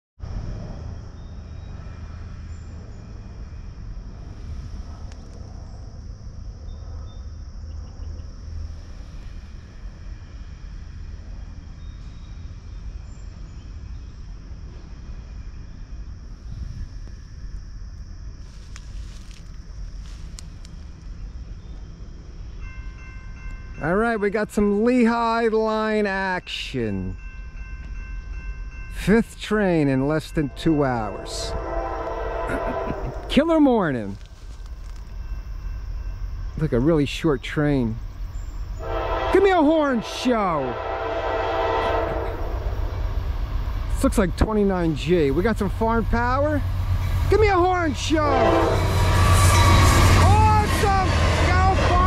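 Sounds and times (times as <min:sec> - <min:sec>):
diesel train rumble: 0:00.2 - 0:52.0
wind buffeting microphone: 0:08.6 - 0:22.4, 0:42.0 - 0:52.0
faint ticks: 0:18.6 - 0:21.1
locomotive air horn: 0:31.1 - 0:33.5, 0:38.8 - 0:42.9, 0:48.0 - 0:51.9.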